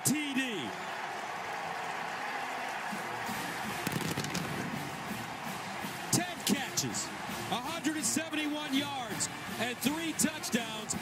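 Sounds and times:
stadium crowd din: 0:00.0 - 0:11.0.

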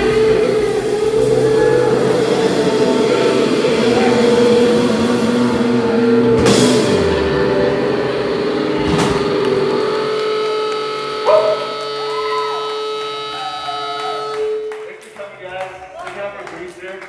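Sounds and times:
cymbal crash: 0:00.0 - 0:14.9
bending guitar notes: 0:00.0 - 0:15.1
held electric guitar chord: 0:00.0 - 0:15.2.

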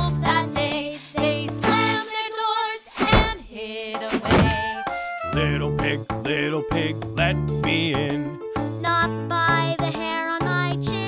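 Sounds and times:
person singing: 0:00.0 - 0:08.3
children's song backing music: 0:00.0 - 0:11.0
thump sound effect: 0:03.0 - 0:03.5, 0:04.1 - 0:04.8.

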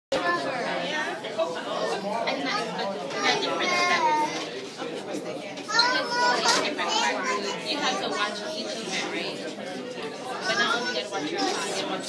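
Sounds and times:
children's voices chattering: 0:00.2 - 0:12.0.

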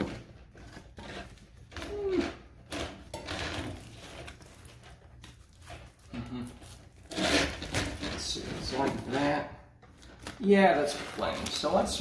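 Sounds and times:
foil duct crinkling: 0:10.0 - 0:12.0.

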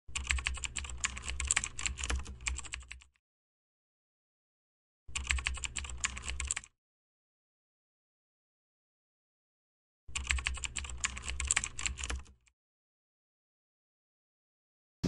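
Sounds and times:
rapid typing on keys: 0:00.1 - 0:03.1, 0:05.1 - 0:06.7, 0:10.1 - 0:12.5.

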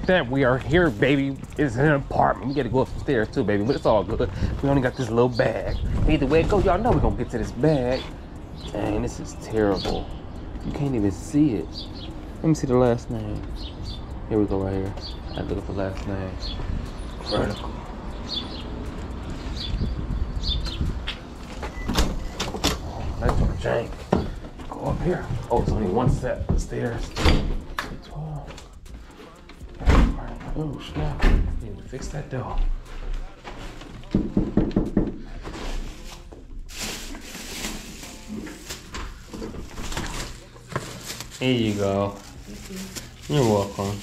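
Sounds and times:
birds chirping: 0:00.0 - 0:29.8
knocks on wooden door: 0:34.2 - 0:35.2
bag and clothing rustling: 0:35.7 - 0:44.0.

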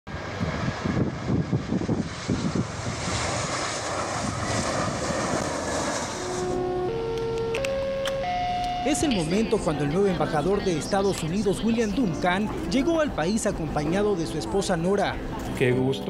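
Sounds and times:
jet engine rush: 0:00.1 - 0:14.2
sustained musical tones: 0:06.1 - 0:16.0.

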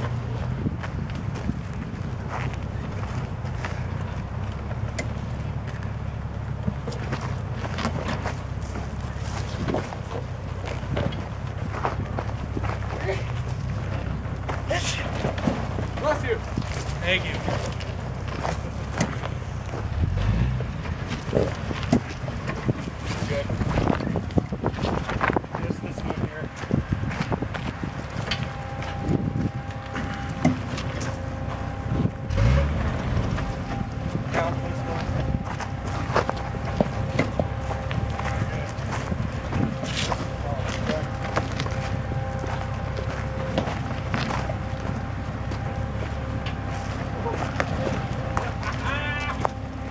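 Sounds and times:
wind buffeting microphone: 0:00.0 - 0:04.4, 0:17.9 - 0:40.9
engine running at low revs: 0:00.0 - 0:49.9
tyres crunching: 0:00.0 - 0:49.9.

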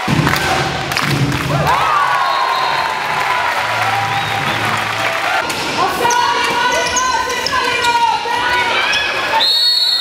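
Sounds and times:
voices in a hall: 0:01.8 - 0:10.0
shoe squeaks: 0:06.0 - 0:08.2.

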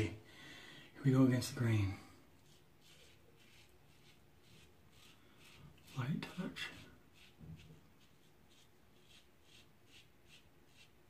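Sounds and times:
razor scraping stubble: 0:02.4 - 0:11.0.

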